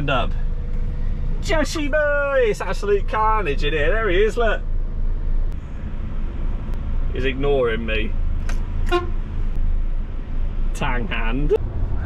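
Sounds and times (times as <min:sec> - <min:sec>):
truck horn toot: 0:08.8 - 0:09.2.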